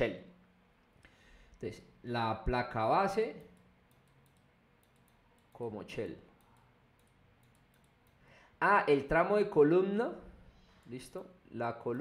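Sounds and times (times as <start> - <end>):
stylus clicking on tablet: 3.3 - 5.6, 6.4 - 8.2
person speaking: 5.4 - 7.2.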